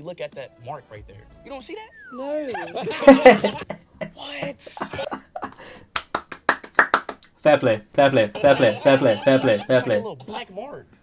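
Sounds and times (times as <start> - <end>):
hands clapping: 5.9 - 7.4.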